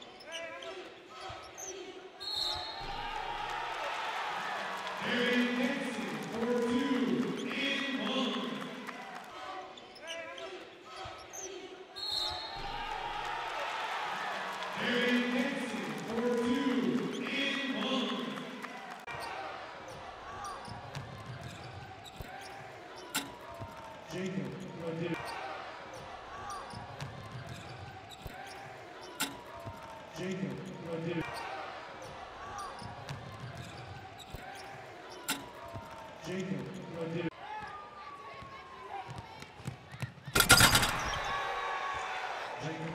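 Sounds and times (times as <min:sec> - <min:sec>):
sneaker squeaks: 0:00.0 - 0:03.2, 0:09.7 - 0:13.0, 0:19.9 - 0:23.8, 0:26.0 - 0:30.0, 0:32.5 - 0:36.0, 0:40.3 - 0:41.5
court noise: 0:00.0 - 0:42.9
crowd noise: 0:00.0 - 0:42.9.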